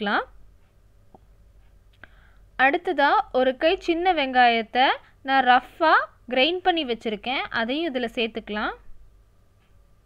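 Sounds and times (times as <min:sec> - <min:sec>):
woman speaking: 0:00.0 - 0:00.4, 0:02.6 - 0:08.9.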